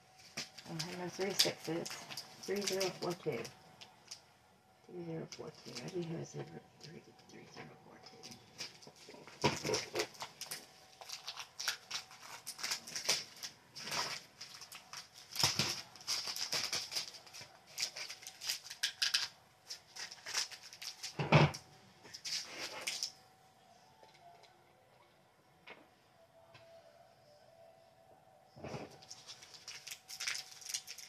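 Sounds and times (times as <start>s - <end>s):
plastic bags crinkling: 0.1s - 4.2s, 5.3s - 6.2s, 8.0s - 21.3s, 22.1s - 23.2s, 28.9s - 31.0s.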